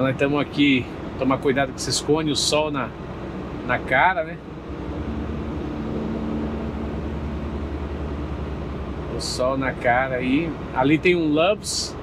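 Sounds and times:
faint steady hum: 0.0 - 12.0
road noise: 0.0 - 12.0
truck engine drone: 0.0 - 12.0.

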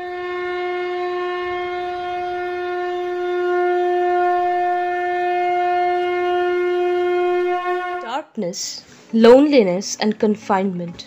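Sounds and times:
wind instrument holding long note: 0.0 - 8.1.

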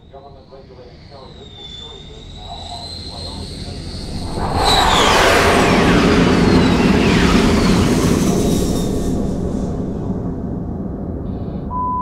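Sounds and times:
deep roaring rumble: 0.0 - 11.9
whistling tones sliding downward: 0.1 - 9.2.

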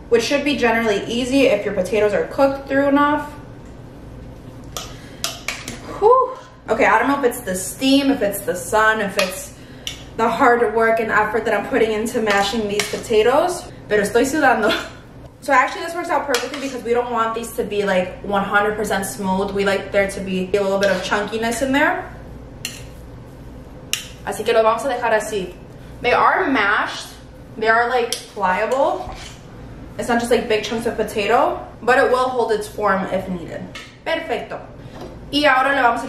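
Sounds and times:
low steady hum: 0.0 - 36.0
fork mashing potatoes: 20.8 - 21.3, 28.1 - 29.4.

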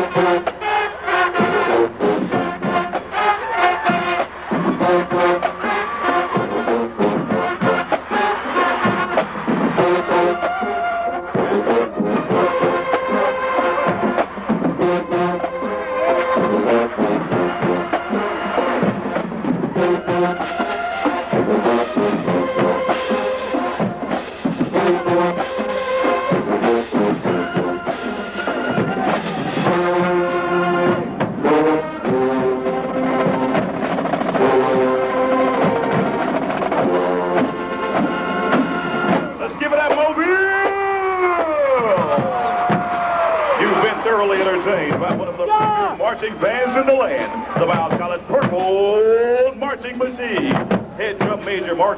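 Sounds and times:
brass chords: 0.0 - 51.9
rapid drum strokes: 0.0 - 51.9.

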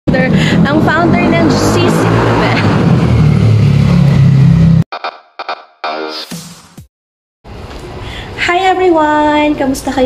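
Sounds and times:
loud low drone: 0.1 - 4.8.

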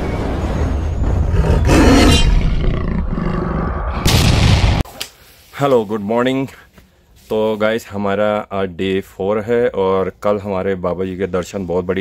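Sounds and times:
big cat roar: 1.2 - 4.0.

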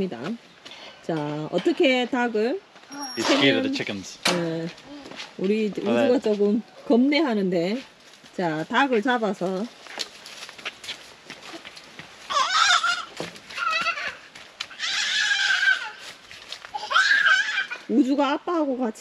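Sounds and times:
footsteps on leafy dirt path: 4.4 - 18.6
toddler squealing and shouting: 12.3 - 16.1, 16.7 - 17.9.

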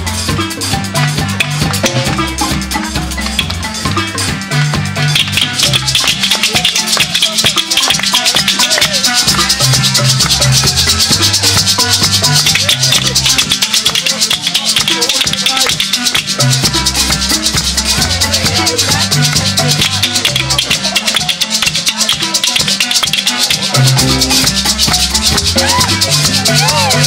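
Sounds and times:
marimba band playing: 0.0 - 27.0
hand shakers rattling: 5.0 - 27.0.

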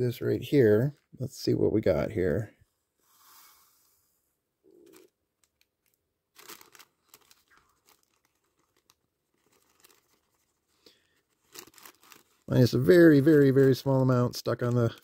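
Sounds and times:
paper filter crinkling: 4.7 - 15.0.

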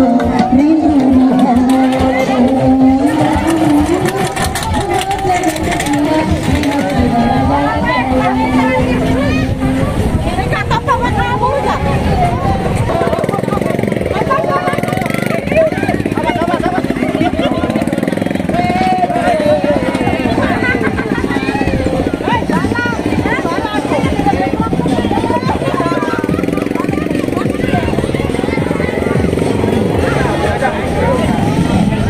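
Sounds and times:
crowd chattering and calling out: 0.0 - 32.0
motorcycle engine running: 0.0 - 32.0.

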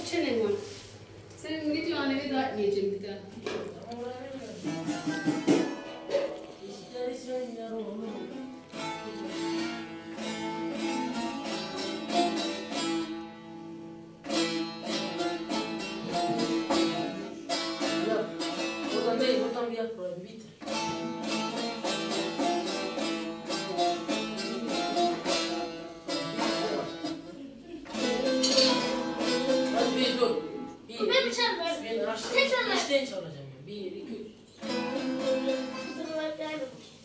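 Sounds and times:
long-necked lute plucked notes: 4.8 - 19.7, 20.6 - 30.9, 34.6 - 36.2.

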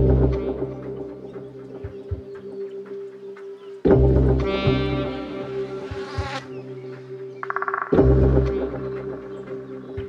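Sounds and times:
held synth drone: 3.9 - 10.0
deep bass thumps: 7.9 - 8.9.

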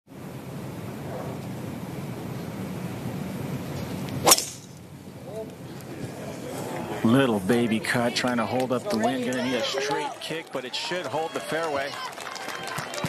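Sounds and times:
golf driver striking ball: 4.2 - 4.8.

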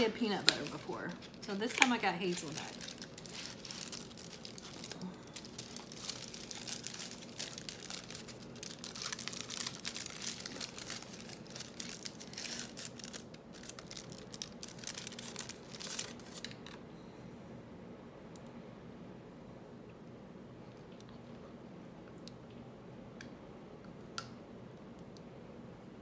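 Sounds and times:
foil wrapper crinkling and tearing: 0.1 - 16.8.

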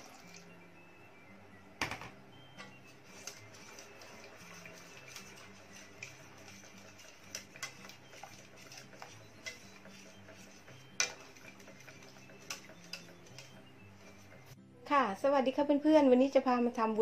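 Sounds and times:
whisk clicking against metal pot: 3.1 - 14.6.

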